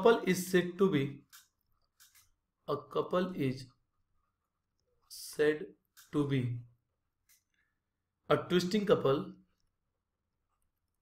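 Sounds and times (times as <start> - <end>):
man speaking: 0.0 - 1.3, 2.6 - 3.8, 5.1 - 6.8, 8.2 - 9.4.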